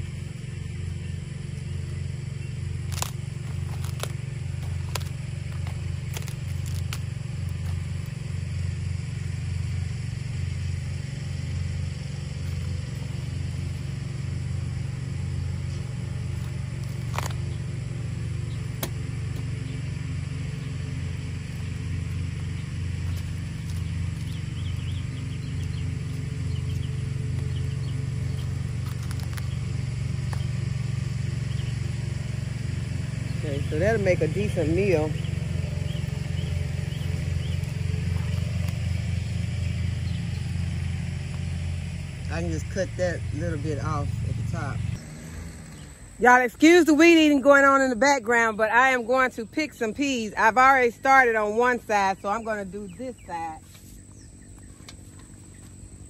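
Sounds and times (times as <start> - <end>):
string trimmer droning: 0.0 - 56.0.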